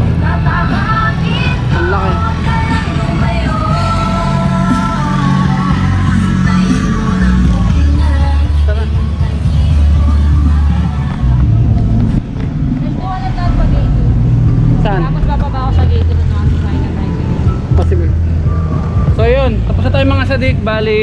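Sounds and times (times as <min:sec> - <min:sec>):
background voices: 0:00.0 - 0:21.0
motor vehicle rumbling: 0:00.0 - 0:21.0.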